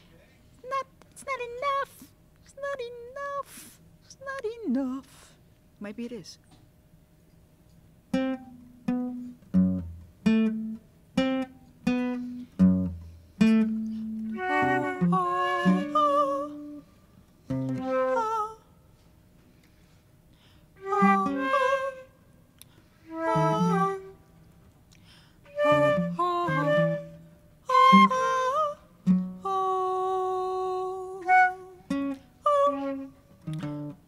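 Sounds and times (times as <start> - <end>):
plucked acoustic guitar: 8.1 - 16.0, 29.0 - 29.4, 31.9 - 34.0
held melody note: 13.5 - 16.8, 23.1 - 24.1.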